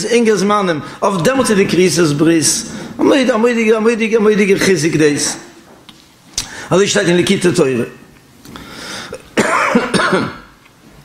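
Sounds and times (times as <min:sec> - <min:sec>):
man coughing: 0:09.4 - 0:10.6.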